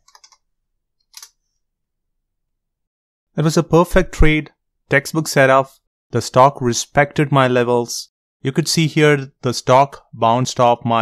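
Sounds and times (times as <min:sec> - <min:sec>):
computer mouse clicks: 0:00.0 - 0:00.4, 0:01.0 - 0:01.4.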